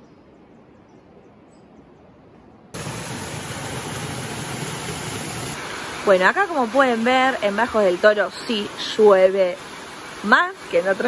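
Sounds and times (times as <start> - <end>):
heavy rain: 2.8 - 11.0.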